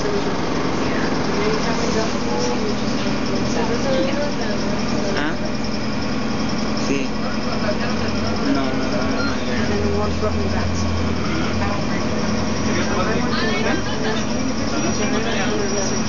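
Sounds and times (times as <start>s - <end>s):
bus diesel engine running: 0.0s - 16.0s
passengers talking: 0.0s - 16.0s.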